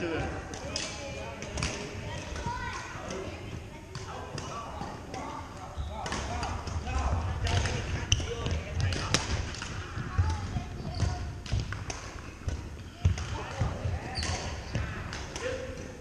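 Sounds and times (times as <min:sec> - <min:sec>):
scattered voices: 0:00.0 - 0:16.0
sneaker squeaks: 0:04.1 - 0:06.6, 0:07.9 - 0:08.7, 0:10.8 - 0:11.3, 0:12.8 - 0:14.9.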